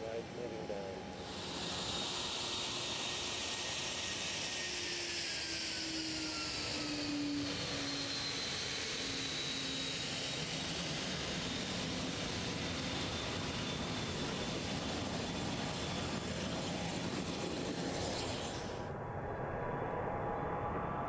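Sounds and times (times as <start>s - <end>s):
jet engines taxiing past: 0.0s - 21.0s.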